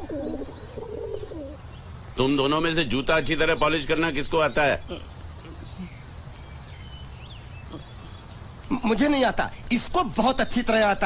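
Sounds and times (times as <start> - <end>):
pigeons cooing: 0.0 - 1.6.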